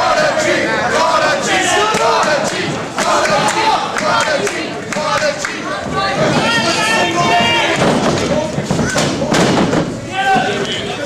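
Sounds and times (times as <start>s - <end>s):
people shouting: 5.6s - 8.0s, 10.1s - 11.0s.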